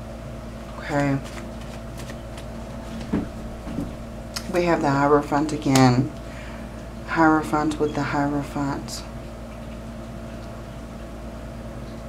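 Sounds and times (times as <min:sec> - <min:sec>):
cards shuffling and rustling: 0:00.9 - 0:03.2.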